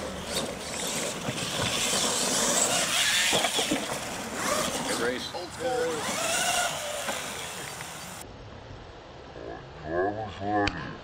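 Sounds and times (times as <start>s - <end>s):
radio-controlled truck whirring: 0.0s - 8.2s
outdoor background noise: 0.0s - 11.0s.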